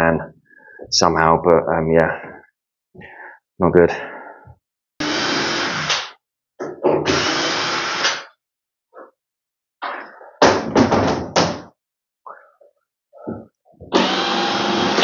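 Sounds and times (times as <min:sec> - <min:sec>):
cordless drill running: 0:05.0 - 0:06.0, 0:07.1 - 0:08.2, 0:13.9 - 0:15.0.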